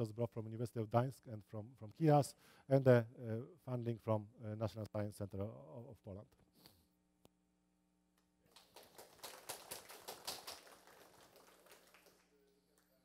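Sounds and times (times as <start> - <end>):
scattered applause: 8.5 - 13.0.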